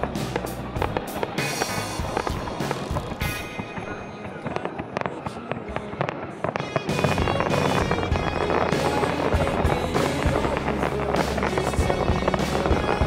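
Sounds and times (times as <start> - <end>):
crowd voices: 0.0 - 13.0
fireworks bursting and crackling: 0.0 - 13.0
music: 0.0 - 13.0.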